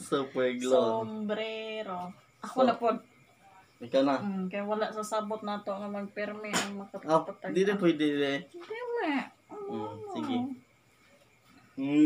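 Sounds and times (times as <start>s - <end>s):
person making whining vocal sounds: 9.5s - 10.5s.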